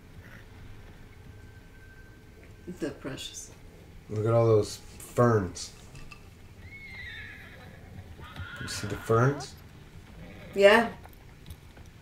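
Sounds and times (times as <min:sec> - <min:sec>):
horse whinnying: 0:06.6 - 0:11.0.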